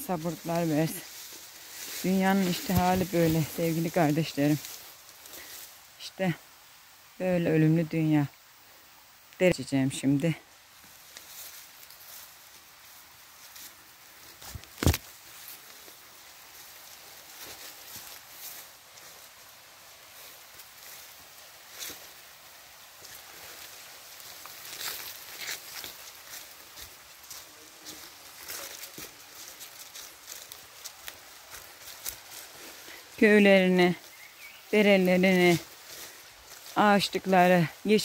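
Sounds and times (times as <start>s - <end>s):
footsteps through undergrowth: 0.0s - 6.0s, 10.0s - 38.0s
leaves rustling: 0.0s - 38.0s.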